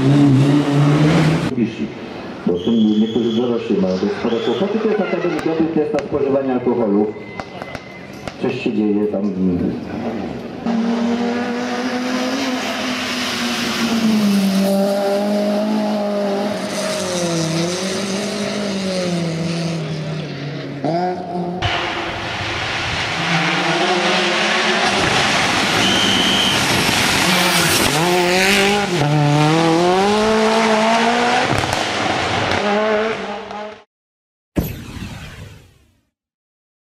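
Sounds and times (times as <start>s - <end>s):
race car engine at high revs: 0.0s - 1.5s, 9.8s - 33.8s.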